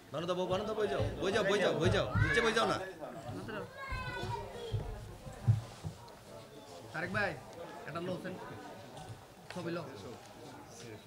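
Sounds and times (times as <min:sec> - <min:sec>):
indistinct chatter of adults and children: 0:00.0 - 0:11.0.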